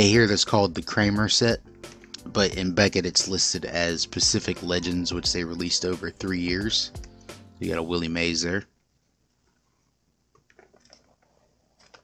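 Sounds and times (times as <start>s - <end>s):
plastic binder page turning: 10.4s - 12.0s.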